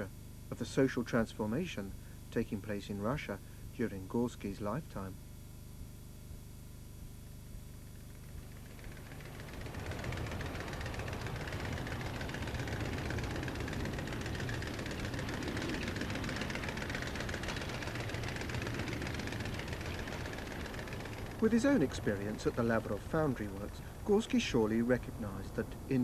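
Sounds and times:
industrial machinery hum and hiss: 0.0 - 26.0.

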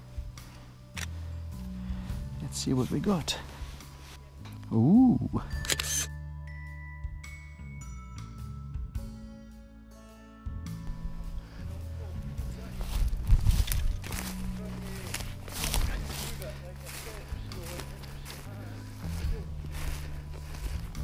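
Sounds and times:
footsteps through undergrowth: 0.0 - 4.7, 10.8 - 21.0.

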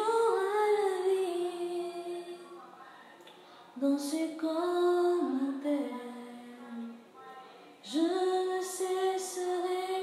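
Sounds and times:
woman singing unaccompanied: 0.0 - 2.7, 3.8 - 10.0.

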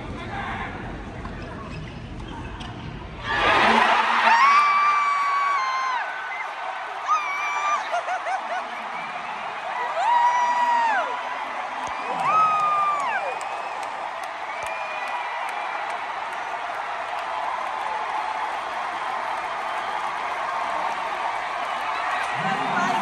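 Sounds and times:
fans whooping: 3.2 - 23.0
stadium crowd cheering and applauding: 3.2 - 23.0.

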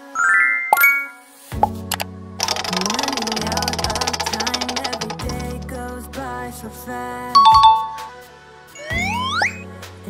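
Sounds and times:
background music with low notes: 0.0 - 10.0
prize wheel rapid ticking: 1.9 - 6.0.

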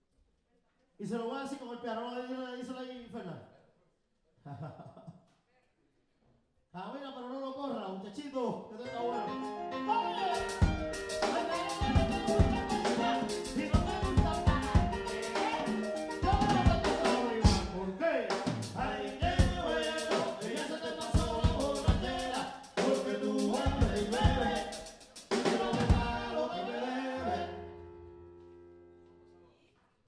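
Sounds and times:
man singing: 8.7 - 27.6
live band playing: 9.1 - 18.8, 19.4 - 26.3.

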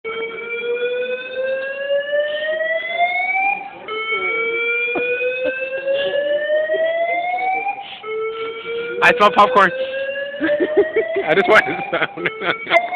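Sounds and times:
fire alarm whooping tone: 0.1 - 12.9.

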